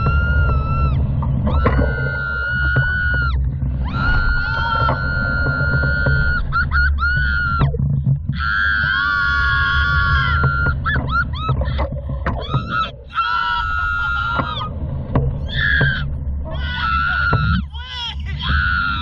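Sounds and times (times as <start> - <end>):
people screaming on a ride: 0.0 - 14.8, 15.4 - 19.0
low rush of wind: 0.0 - 19.0.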